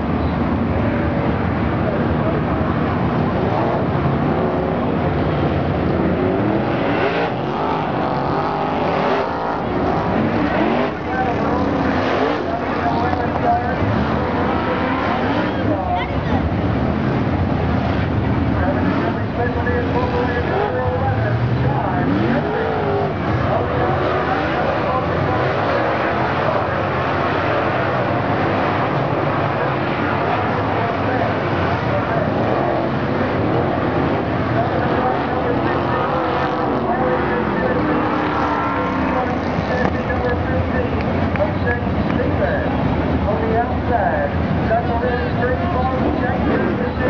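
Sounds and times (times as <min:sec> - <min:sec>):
race car engines passing: 0:00.0 - 0:47.0.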